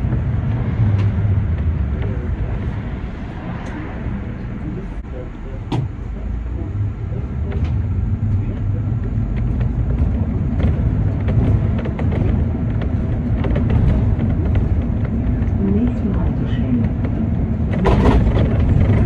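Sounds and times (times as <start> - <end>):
bus engine rumbling: 0.0 - 19.0.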